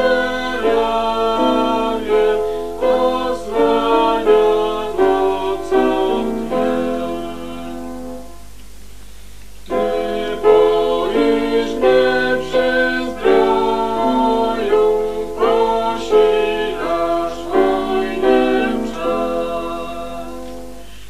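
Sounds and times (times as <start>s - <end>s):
hymn singing: 0.0s - 8.5s, 9.7s - 21.0s.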